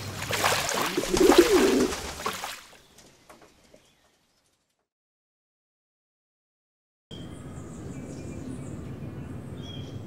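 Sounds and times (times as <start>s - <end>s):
dove cooing: 0.9s - 2.0s.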